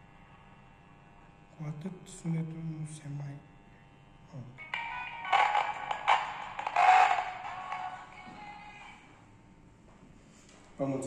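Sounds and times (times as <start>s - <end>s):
music from small loudspeaker: 4.6s - 9.0s.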